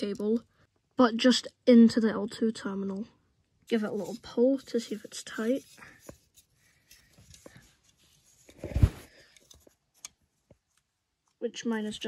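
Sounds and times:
plastic handling rustles and clicks: 0:03.7 - 0:10.9.

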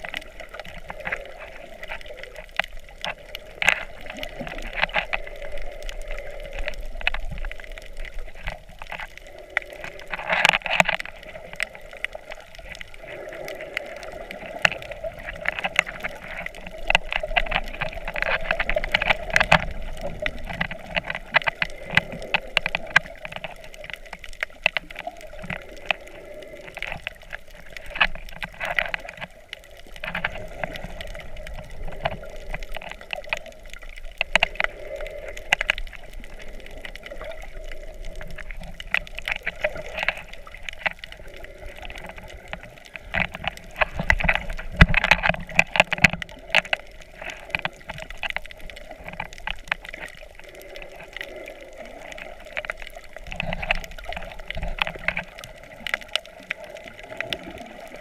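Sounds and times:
muffled underwater water wash: 0:00.0 - 0:58.0
sharp underwater clicks: 0:00.0 - 0:58.0.

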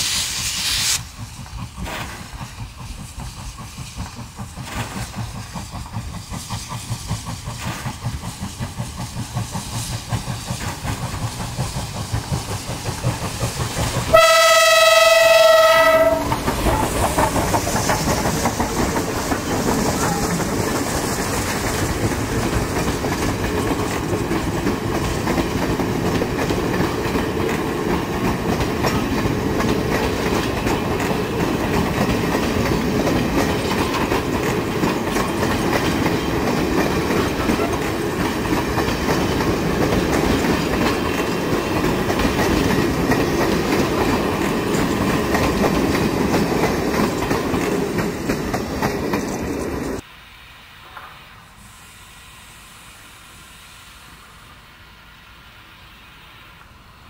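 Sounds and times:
train coaches rumbling on rails: 0:00.0 - 0:50.1
steam locomotive whistle: 0:14.1 - 0:17.0.

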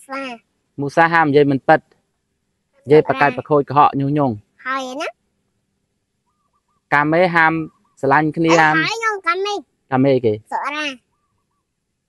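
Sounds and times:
person speaking short phrase: 0:02.9 - 0:03.5, 0:08.5 - 0:09.0.

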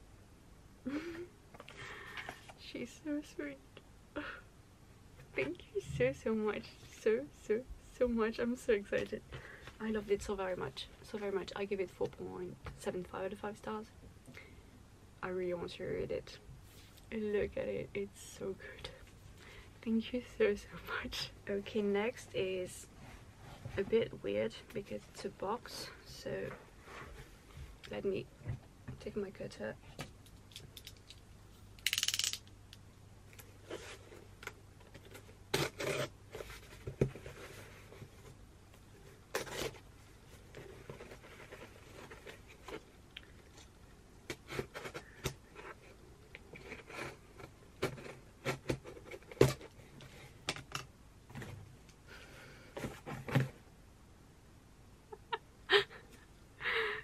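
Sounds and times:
box cutter slicing tape and cardboard: 0:35.5 - 0:36.1.

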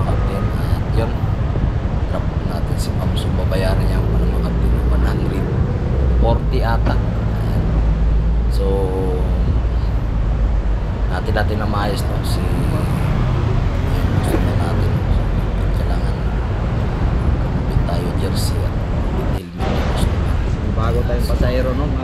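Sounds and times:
street traffic: 0:00.0 - 0:22.0.

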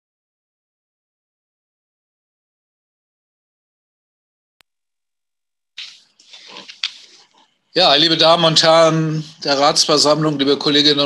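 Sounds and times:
papers rustling at microphone: 0:05.8 - 0:07.6.

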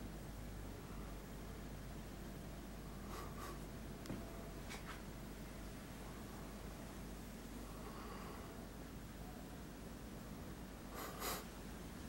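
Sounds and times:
faint scratchy rustles: 0:04.6 - 0:05.1.

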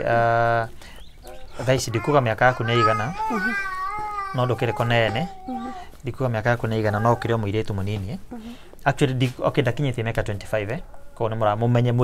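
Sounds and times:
man talking: 0:00.0 - 0:03.6, 0:04.2 - 0:12.0.

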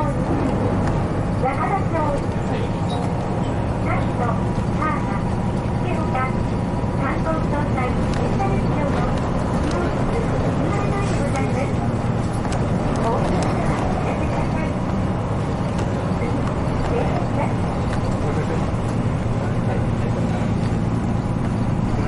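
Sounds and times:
bus engine drone: 0:00.0 - 0:22.0.

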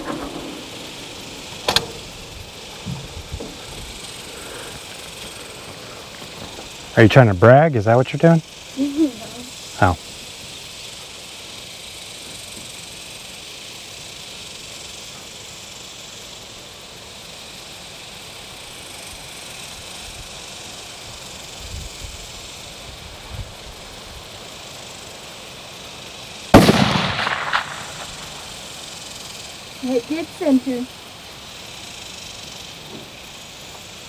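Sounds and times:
background hiss: 0:00.0 - 0:34.0
rifle shot: 0:26.5 - 0:28.5.

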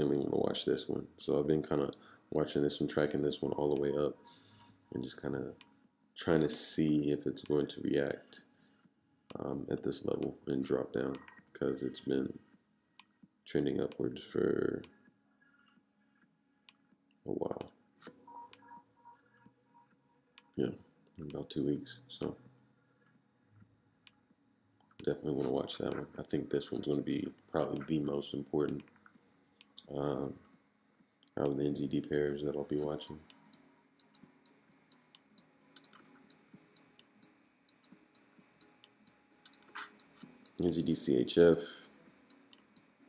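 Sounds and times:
sharp click: 0:33.0 - 0:43.0.

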